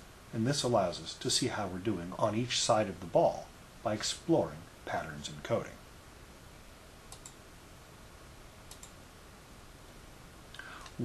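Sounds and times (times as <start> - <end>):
faint steady hiss: 0.0 - 11.0
computer mouse clicks: 7.1 - 7.4, 8.7 - 9.0.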